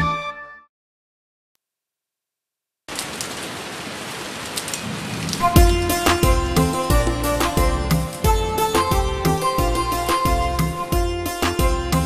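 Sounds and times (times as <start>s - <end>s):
sharper raindrops: 2.9s - 8.8s
steady falling rain: 2.9s - 10.7s.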